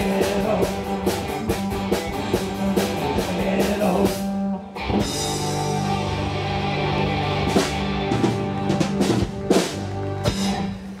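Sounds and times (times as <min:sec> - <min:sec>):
rock band sustained chord: 0:00.0 - 0:11.0.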